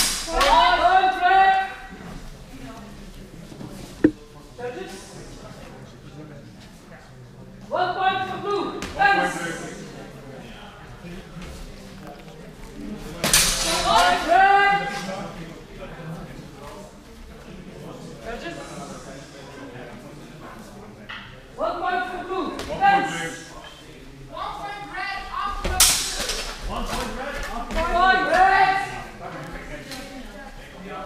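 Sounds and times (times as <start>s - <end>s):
voices talking in a hall: 0.0s - 31.0s.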